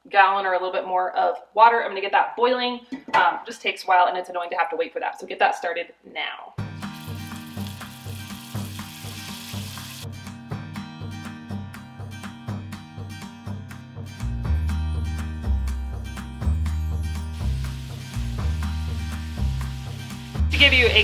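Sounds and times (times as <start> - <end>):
meat sizzling in a skillet: 6.9 - 10.1, 17.3 - 21.0
music with steady beat and bass: 10.0 - 21.0.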